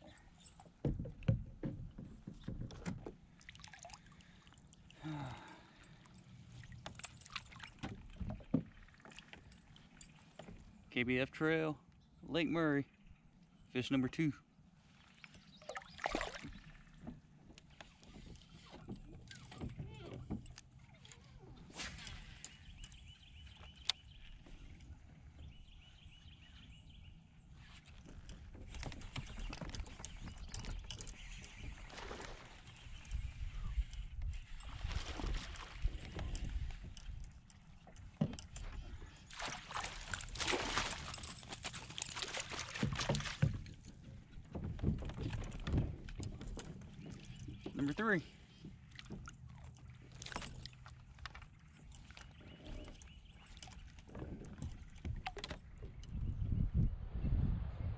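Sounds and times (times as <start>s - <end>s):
water sloshing and splashing: 0.0s - 10.9s, 14.8s - 25.4s, 27.5s - 56.2s.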